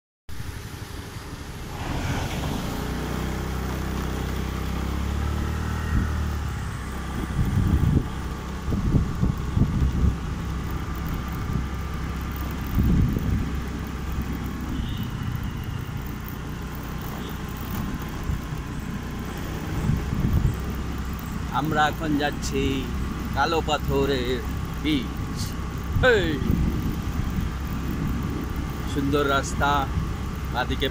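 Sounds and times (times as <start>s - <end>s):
wind buffeting microphone: 1.6s - 16.3s, 17.7s - 30.9s
small motorbike engine running: 2.5s - 30.9s.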